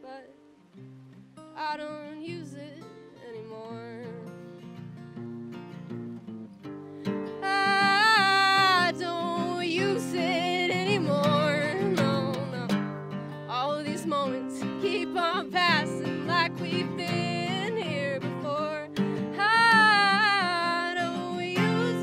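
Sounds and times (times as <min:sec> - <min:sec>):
woman singing: 0:00.0 - 0:00.4, 0:01.5 - 0:04.7, 0:07.2 - 0:12.9, 0:13.5 - 0:22.0
acoustic guitar: 0:00.0 - 0:22.0.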